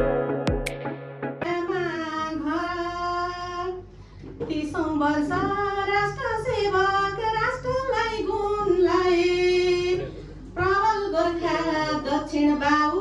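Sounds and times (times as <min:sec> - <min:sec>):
woman singing unaccompanied: 0:01.4 - 0:03.8, 0:04.5 - 0:10.0, 0:10.6 - 0:13.0.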